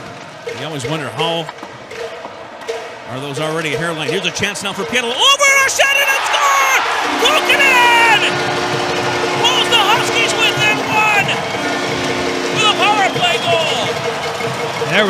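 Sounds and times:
crowd cheering and shouting: 0:05.0 - 0:15.0
low horn chord: 0:07.0 - 0:15.0.

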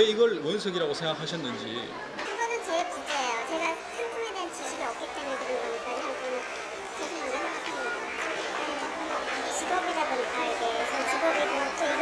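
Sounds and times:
room chatter: 0:00.0 - 0:12.0.

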